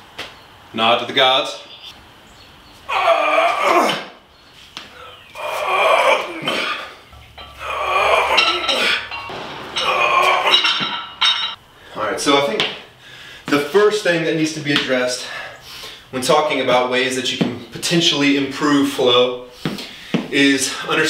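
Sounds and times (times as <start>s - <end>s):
barbell plates clinking: 7.1s - 11.6s.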